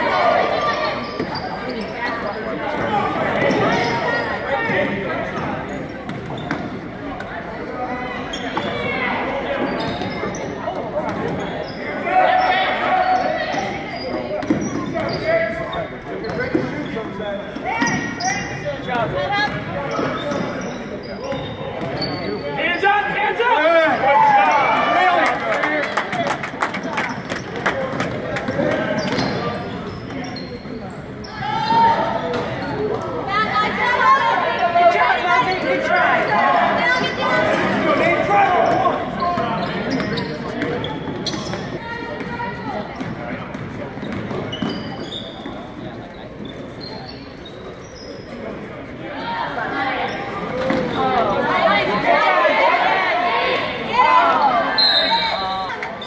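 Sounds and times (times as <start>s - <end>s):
voices echoing in a gymnasium: 0.0s - 56.0s.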